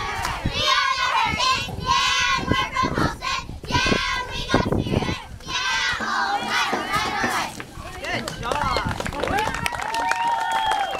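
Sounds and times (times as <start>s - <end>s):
cheerleaders chanting in unison: 0.0s - 7.6s.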